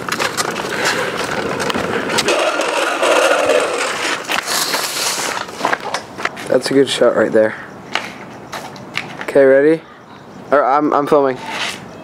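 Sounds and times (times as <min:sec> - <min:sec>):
plastic wheels scraping pavement: 0:00.0 - 0:06.8, 0:11.3 - 0:11.9
hissing scrape: 0:02.1 - 0:05.6, 0:11.4 - 0:11.9.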